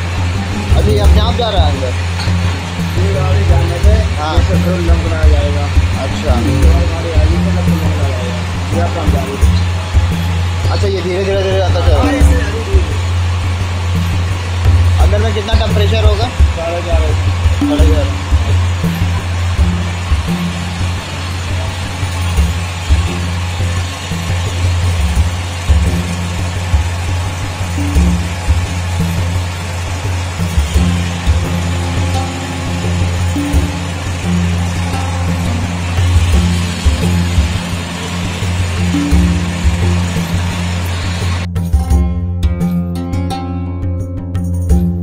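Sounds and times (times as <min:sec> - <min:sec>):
low machinery hum and rumble: 0:00.0 - 0:42.1
background music: 0:00.0 - 0:45.0
clean guitar music: 0:00.0 - 0:45.0.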